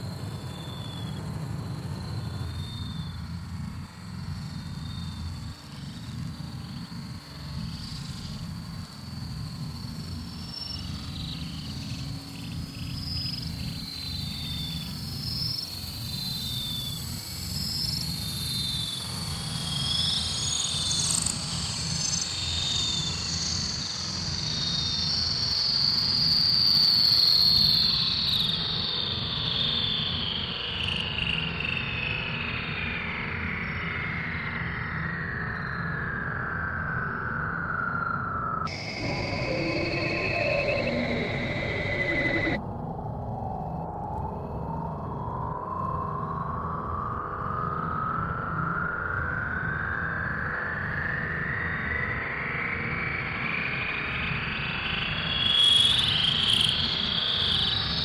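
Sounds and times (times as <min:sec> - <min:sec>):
high tone gliding downward: 0:35.9 - 0:42.6
high chirping blips: 0:38.7 - 0:42.6
low synthesizer drone: 0:38.7 - 0:42.6.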